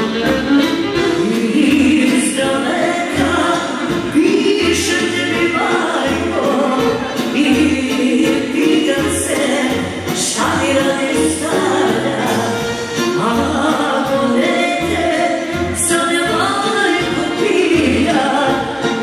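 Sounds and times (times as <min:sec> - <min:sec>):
band with steady bass beat: 0:00.0 - 0:14.4
woman singing into a microphone: 0:01.0 - 0:19.0.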